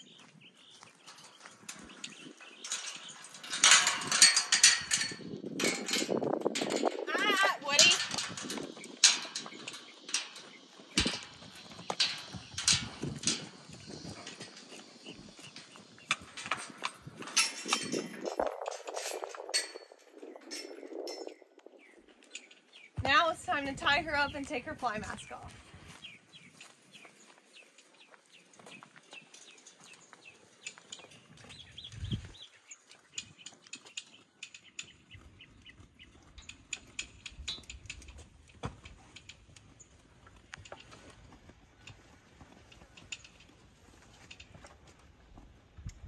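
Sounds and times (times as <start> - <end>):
horse hooves on dirt: 0.0 - 46.0
metal gate clanking and rattling: 1.0 - 21.5, 27.8 - 35.1, 36.4 - 45.0.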